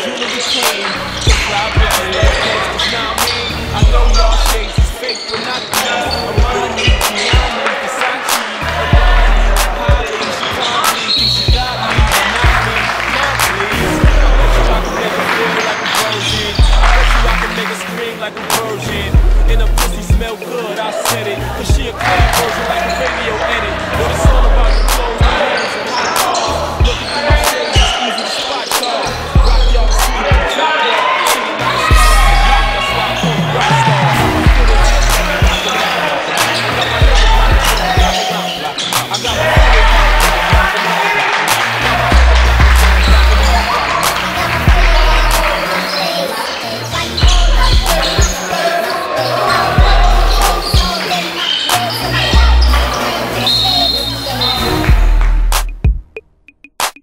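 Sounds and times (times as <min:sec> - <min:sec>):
vocals over beat: 0:00.0 - 0:30.6, 0:31.2 - 0:57.0
hip hop music with heavy bass: 0:00.0 - 0:57.0.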